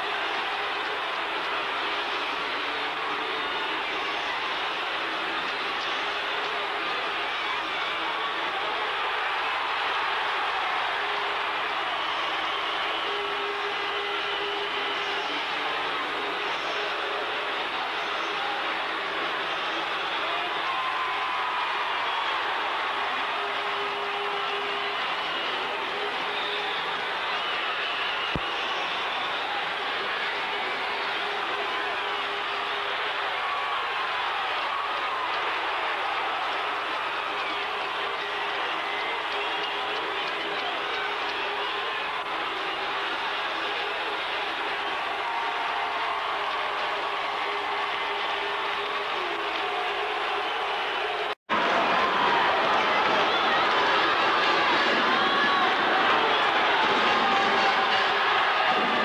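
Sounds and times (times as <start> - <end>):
crowd cheering and shouting: 0.0 - 59.0.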